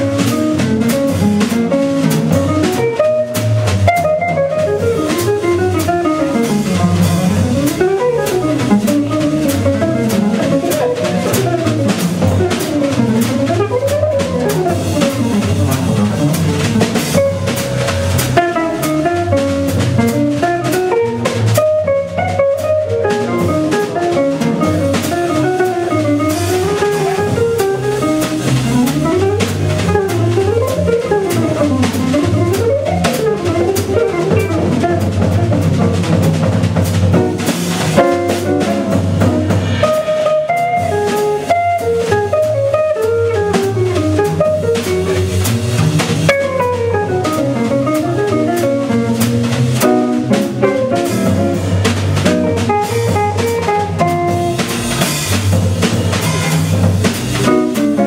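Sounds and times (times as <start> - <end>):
double bass: 0.0 - 58.0
drum kit: 0.0 - 58.0
electric jazz guitar runs: 0.0 - 58.0.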